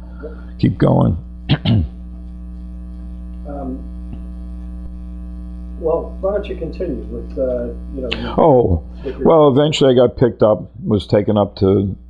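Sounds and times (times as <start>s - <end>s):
electrical mains hum: 0.0s - 12.0s
man clearing his throat: 1.5s - 2.0s.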